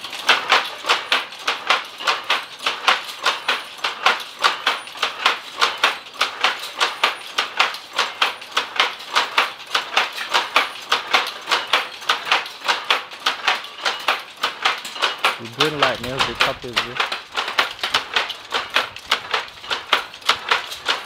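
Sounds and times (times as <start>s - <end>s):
powerloom rhythmic clatter: 0.0s - 21.0s.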